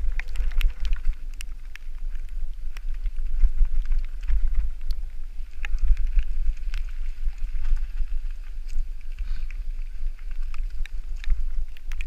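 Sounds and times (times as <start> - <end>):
bike tyres clicking and rattling: 0.0 - 12.0
wind buffeting microphone: 0.0 - 12.0.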